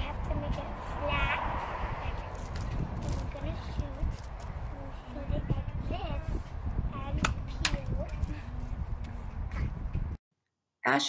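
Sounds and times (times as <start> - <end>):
child's voice: 0.0 - 2.3, 3.0 - 8.5.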